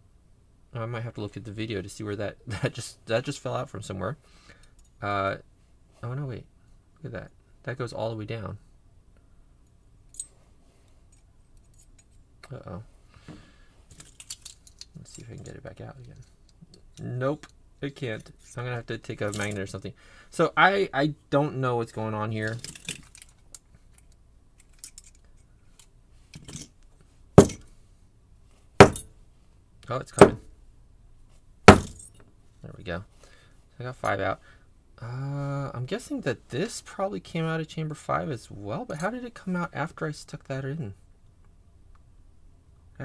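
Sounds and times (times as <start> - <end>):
loud sharp knocks on lock: 27.4 - 27.6, 28.8 - 29.1, 30.2 - 30.5, 31.7 - 32.1.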